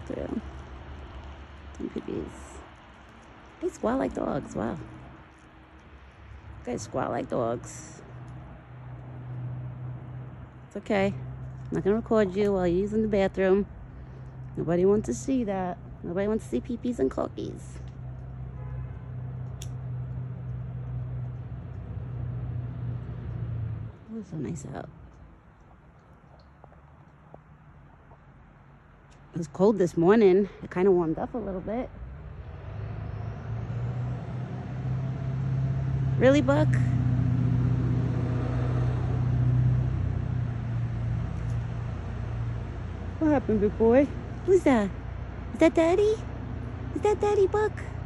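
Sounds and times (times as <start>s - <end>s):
vehicle engine hum: 0.0s - 48.0s.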